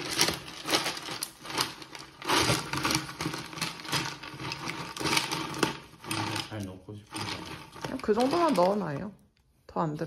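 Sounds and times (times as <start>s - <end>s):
ice cubes clinking and crunching: 0.0s - 9.2s.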